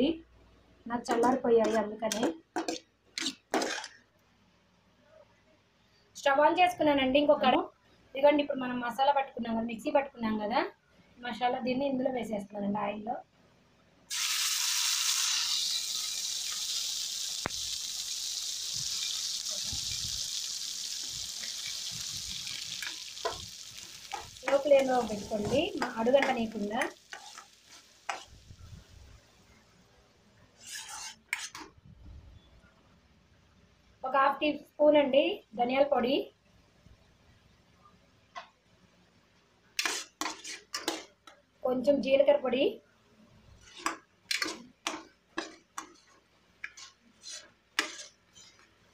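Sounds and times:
spoon knocking and stirring in pan: 1.1 - 3.9, 22.4 - 28.3, 39.8 - 41.4, 43.7 - 48.8
paste sizzling in hot oil: 14.1 - 29.1, 39.8 - 41.1, 43.6 - 48.9.

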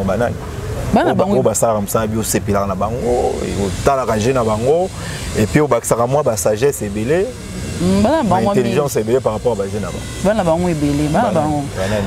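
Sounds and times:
man talking: 0.0 - 0.4, 1.0 - 7.4, 8.2 - 10.4.

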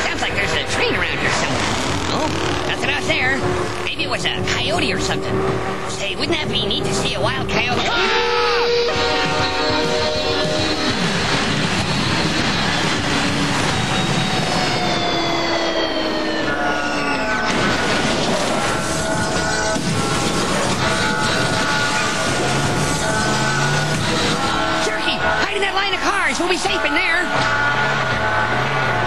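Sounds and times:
cartoon music score: 0.0 - 29.0
cartoon train rushing effect: 0.0 - 29.0.

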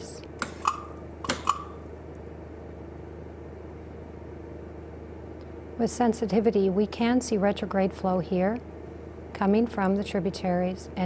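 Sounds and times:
low mechanical hum: 0.0 - 11.0.

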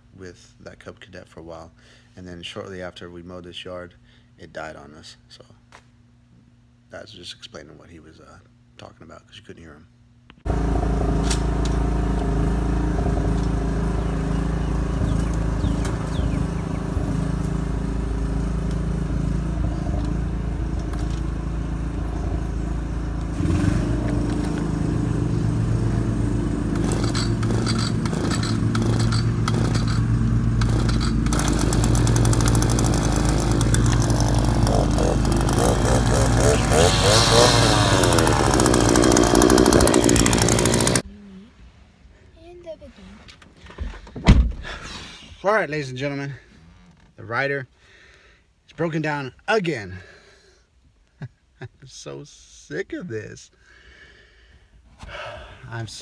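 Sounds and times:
riding mower engine running: 10.4 - 41.0.

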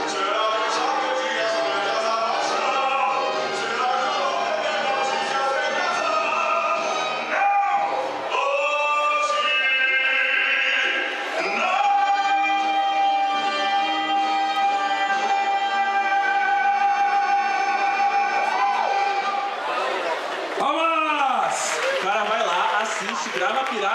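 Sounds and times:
operatic singing over music: 0.0 - 23.9.

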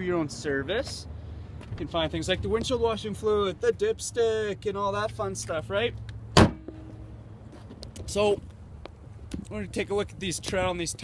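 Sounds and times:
car hood slamming shut: 6.4 - 6.9.

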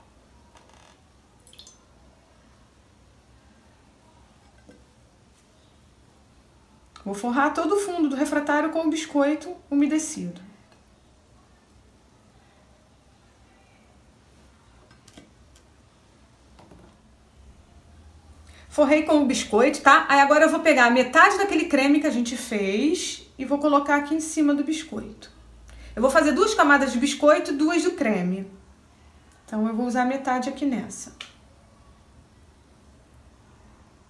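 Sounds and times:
milk dripping: 1.4 - 2.0.

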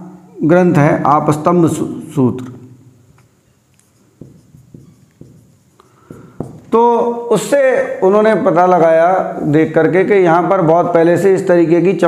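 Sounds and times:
marker writing on whiteboard: 3.1 - 7.1.

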